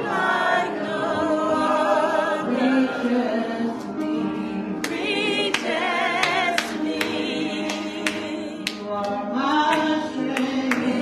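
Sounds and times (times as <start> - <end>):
choir singing gospel: 0.0 - 11.0
hands clapping a beat: 4.8 - 11.0.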